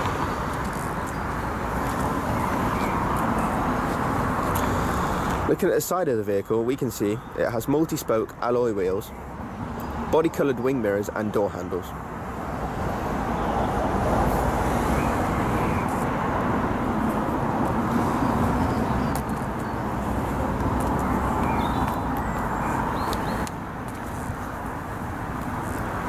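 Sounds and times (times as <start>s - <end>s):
road traffic: 0.0s - 26.0s.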